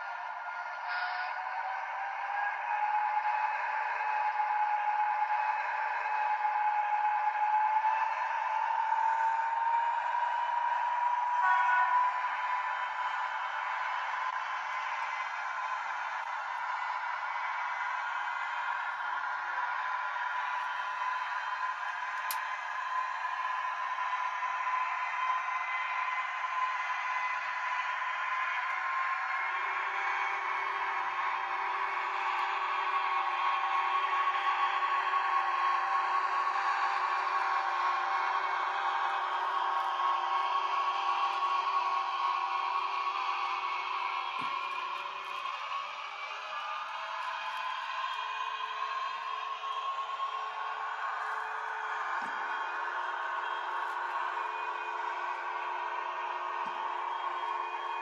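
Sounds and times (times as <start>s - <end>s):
model train running on track: 0.0s - 58.0s.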